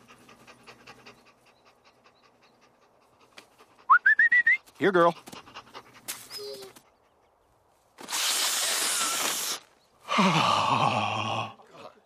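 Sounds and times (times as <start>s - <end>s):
dog panting: 0.0s - 4.0s, 4.7s - 7.4s
rising whistle: 3.9s - 4.6s.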